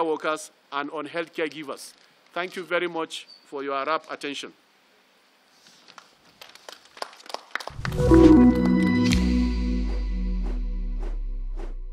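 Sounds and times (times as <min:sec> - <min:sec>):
outro music: 0:07.8 - 0:11.9.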